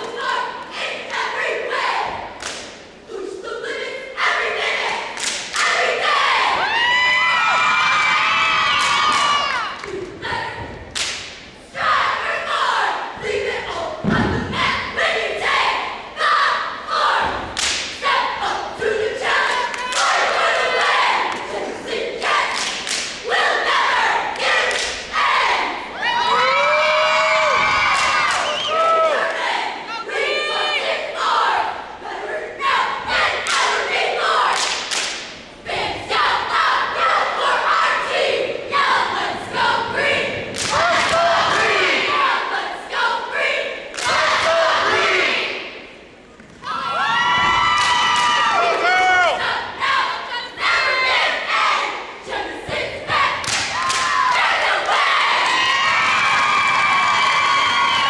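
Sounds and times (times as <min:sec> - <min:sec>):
cheerleaders shouting in unison: 0:00.0 - 0:02.4, 0:03.0 - 0:10.9, 0:11.6 - 0:34.8, 0:35.6 - 0:58.0
sharp claps and stomps: 0:05.2 - 0:05.7, 0:08.7 - 0:10.0, 0:10.9 - 0:11.4, 0:17.4 - 0:18.0, 0:22.5 - 0:23.2, 0:34.6 - 0:35.4, 0:40.5 - 0:41.6, 0:53.4 - 0:54.2
crowd cheering: 0:06.3 - 0:09.8, 0:25.9 - 0:30.0, 0:46.6 - 0:49.5, 0:53.1 - 0:58.0.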